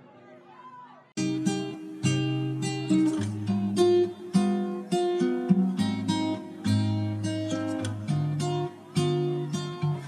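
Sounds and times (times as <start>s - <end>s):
acoustic guitar strumming chords: 1.2s - 10.0s.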